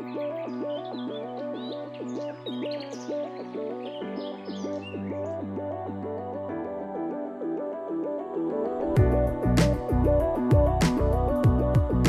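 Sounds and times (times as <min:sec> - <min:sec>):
birds chirping: 0:00.0 - 0:05.9.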